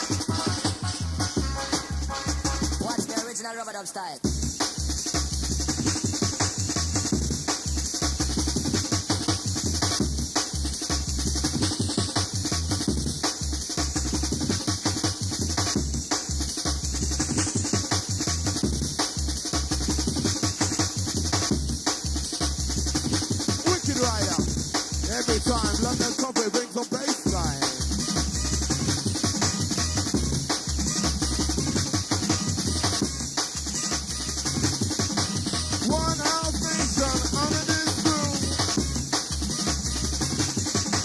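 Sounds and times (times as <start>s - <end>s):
heavy bass: 0.0s - 3.1s, 4.2s - 26.2s, 27.2s - 41.0s
fast breakbeat drums: 0.0s - 41.0s
jungle dj mix: 0.0s - 41.0s.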